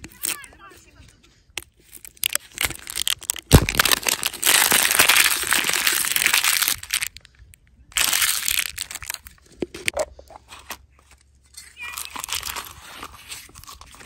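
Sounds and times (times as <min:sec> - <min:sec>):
paper tearing and crinkling: 0:01.8 - 0:07.2, 0:08.0 - 0:09.3, 0:11.8 - 0:14.0.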